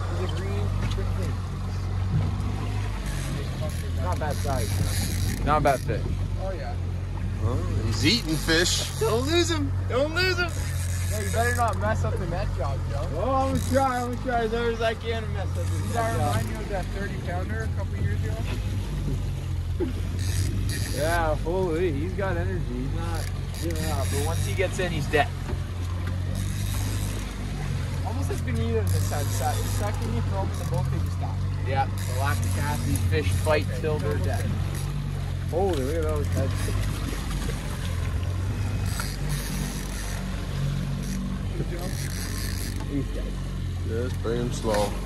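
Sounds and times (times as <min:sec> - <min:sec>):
boat motor droning: 0:00.0 - 0:45.0
water noise: 0:00.0 - 0:45.0
wind: 0:00.0 - 0:45.0.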